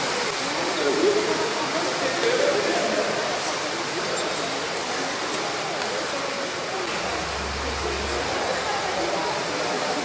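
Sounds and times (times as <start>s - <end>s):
faint voices: 0.0s - 10.0s
rushing room noise: 6.6s - 10.0s
low hum: 6.9s - 9.7s.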